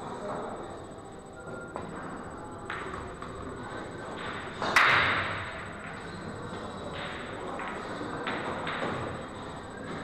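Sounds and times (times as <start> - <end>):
pool balls clicking: 6.9 - 10.0.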